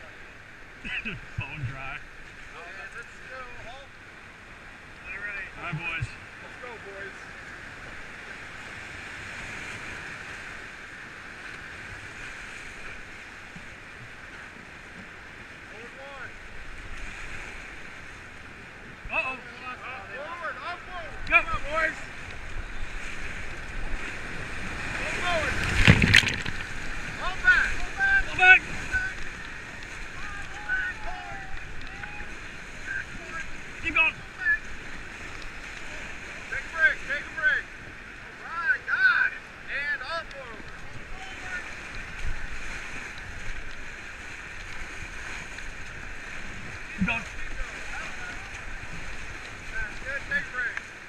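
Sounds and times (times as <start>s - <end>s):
whitewater rapids rushing: 15.2s - 51.0s
loud thump or splash: 25.5s - 27.0s
people shouting and whooping: 30.2s - 33.0s.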